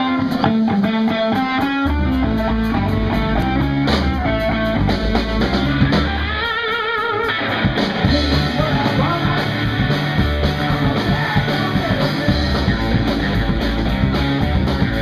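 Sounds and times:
blues-rock band playing live: 0.0s - 15.0s.

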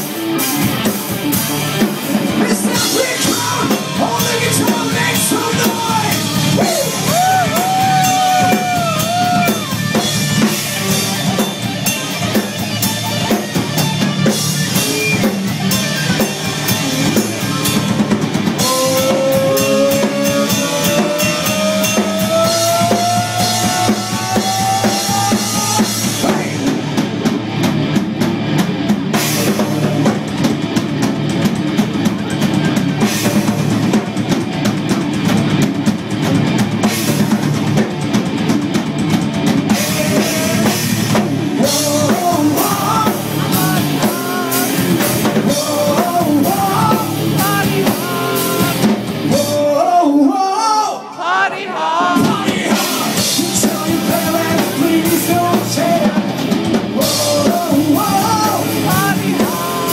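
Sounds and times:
wavering lead guitar line: 0.0s - 50.4s, 51.0s - 59.9s
hard rock band playing: 0.0s - 59.9s.

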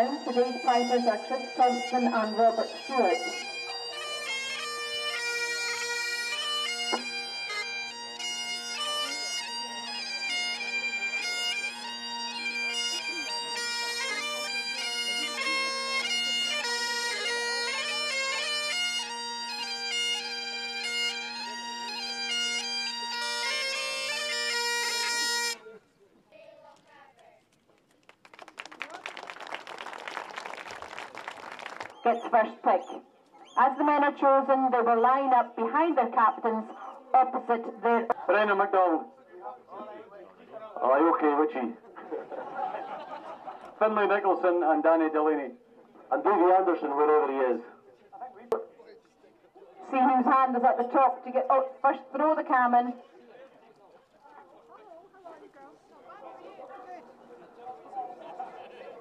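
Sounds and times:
voices: 0.0s - 5.1s, 32.0s - 59.0s
bagpipes playing a march: 0.0s - 25.6s, 31.4s - 39.1s.

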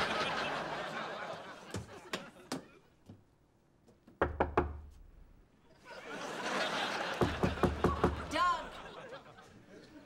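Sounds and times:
fist knocking on door: 4.2s - 4.8s, 7.2s - 8.2s.

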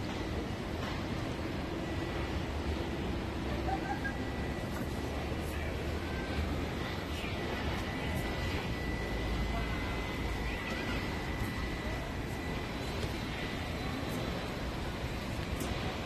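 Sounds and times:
faint high-pitched tone: 4.2s - 16.0s.

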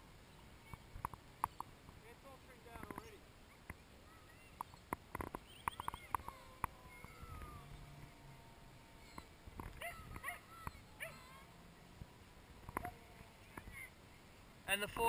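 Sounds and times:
animal yips and chirps: 5.5s - 6.3s, 9.0s - 11.4s
distant electric motor whine: 6.6s - 13.7s.

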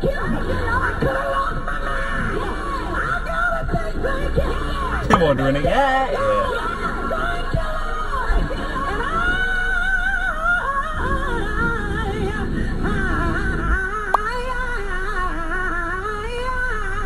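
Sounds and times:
woman singing gospel: 0.0s - 17.0s.

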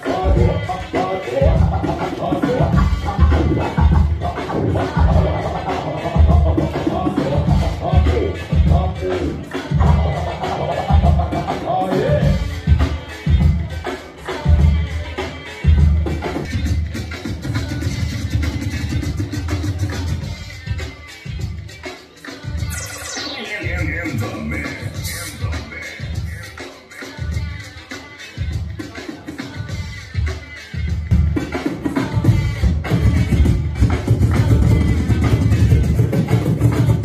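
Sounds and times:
heavy bass beat: 0.0s - 13.7s, 22.6s - 26.5s, 30.8s - 37.0s
loud electronic dance music: 0.0s - 37.0s.

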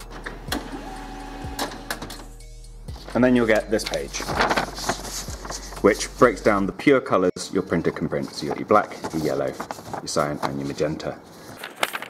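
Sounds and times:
printer mechanical clicks: 0.1s - 2.2s
printer motor whine: 0.2s - 2.3s.

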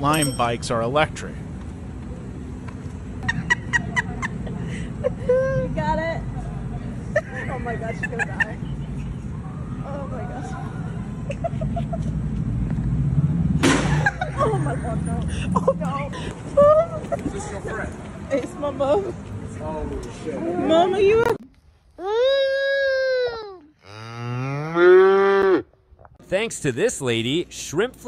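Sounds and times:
street low hum: 0.0s - 28.0s
calf mooing: 23.8s - 25.6s.

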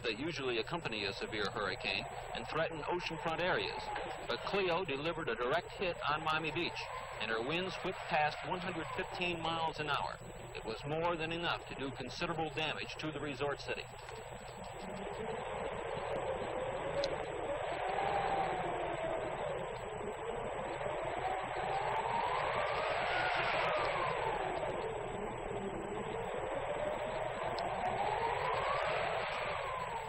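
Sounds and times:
wind gusts rushing and whistling: 13.9s - 30.0s.

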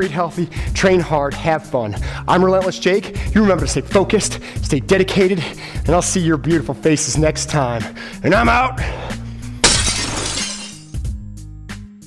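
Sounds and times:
background music with steady beat: 0.0s - 9.7s, 10.9s - 12.0s
glass breaking crash: 9.6s - 11.0s.

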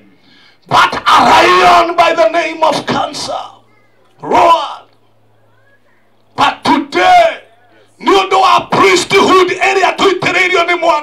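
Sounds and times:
man shouting into a microphone: 0.6s - 3.6s, 4.2s - 4.9s, 6.4s - 11.0s.

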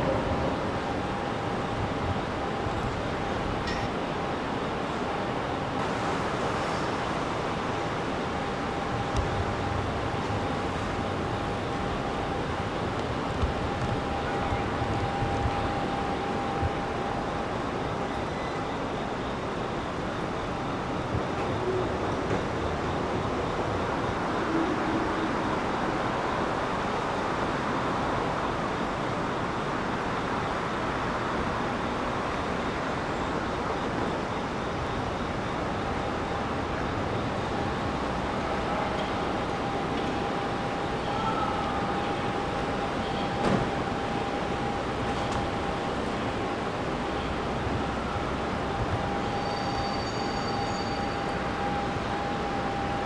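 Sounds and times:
traffic noise: 0.0s - 53.0s.

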